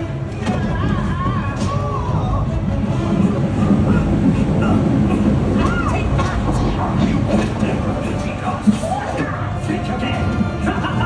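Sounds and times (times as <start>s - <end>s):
action music: 0.0s - 11.0s
heavy low rumble: 0.0s - 11.0s.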